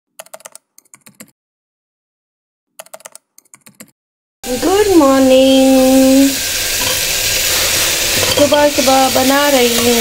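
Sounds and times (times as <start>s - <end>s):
keyboard keystroke clicks: 0.2s - 1.3s, 2.8s - 3.9s.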